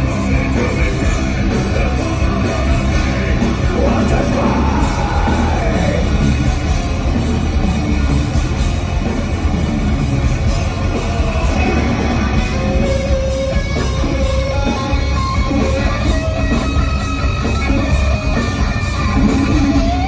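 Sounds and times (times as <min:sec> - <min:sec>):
heavy metal band playing: 0:00.0 - 0:20.0.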